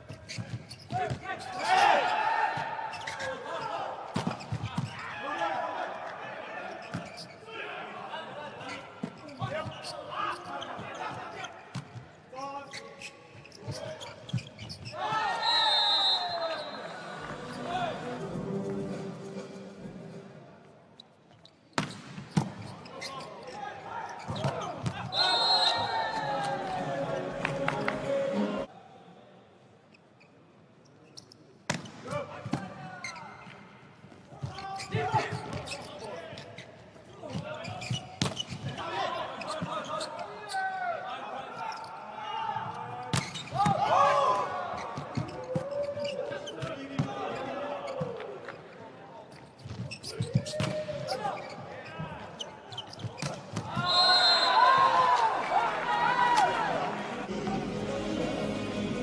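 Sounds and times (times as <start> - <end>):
players shouting: 1.5 - 4.0, 23.6 - 28.7, 53.6 - 59.0
referee's whistle: 15.0 - 17.2, 25.0 - 26.5, 53.7 - 55.0.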